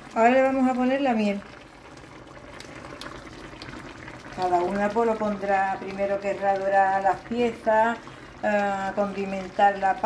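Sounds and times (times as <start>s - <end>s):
sauce bubbling in a frying pan: 0.0s - 10.0s.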